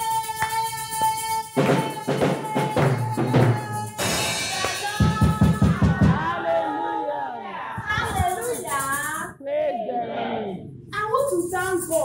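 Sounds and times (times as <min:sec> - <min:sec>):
congregation shouting and exclaiming: 0:01.6 - 0:10.7.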